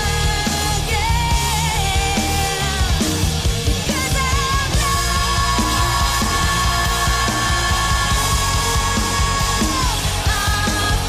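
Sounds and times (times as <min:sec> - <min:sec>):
band playing with drums: 0:00.0 - 0:11.0.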